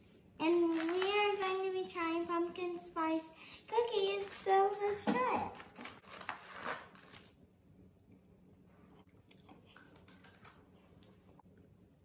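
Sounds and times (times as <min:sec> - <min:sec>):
plastic packaging crinkling: 0:00.7 - 0:01.6, 0:05.5 - 0:07.4
cookies crunching: 0:05.6 - 0:07.4.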